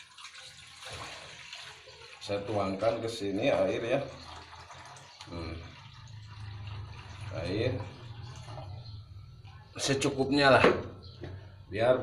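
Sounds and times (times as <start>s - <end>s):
water trickling into metal pot: 0.0s - 9.9s.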